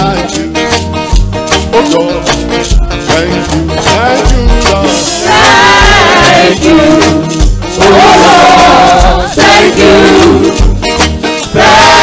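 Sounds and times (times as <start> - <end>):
band playing: 0.0 - 12.0
group singing gospel: 4.9 - 12.0.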